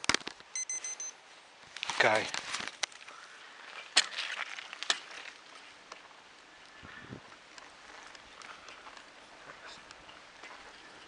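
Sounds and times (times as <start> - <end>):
faint road and wind hiss: 0.0 - 11.0.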